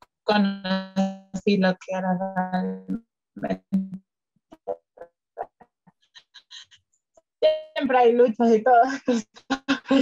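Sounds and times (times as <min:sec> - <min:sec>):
high-pitched blips: 0:03.7 - 0:04.0, 0:07.4 - 0:07.9.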